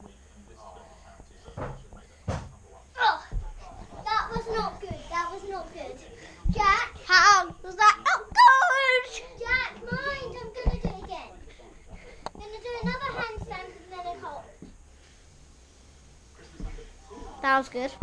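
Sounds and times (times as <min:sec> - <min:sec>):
children calling and chattering: 0:04.0 - 0:11.4.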